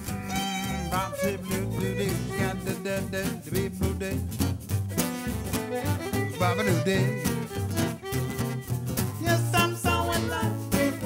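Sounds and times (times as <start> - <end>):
violin: 0.0 - 3.5, 4.9 - 11.0
acoustic swing band playing: 0.0 - 11.0
strummed acoustic guitar: 0.0 - 11.0
upright bass: 0.0 - 11.0.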